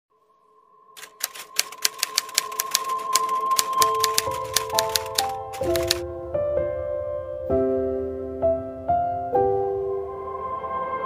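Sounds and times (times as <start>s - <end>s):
typewriter keys clacking: 1.0s - 6.0s
background music chord: 3.0s - 11.0s.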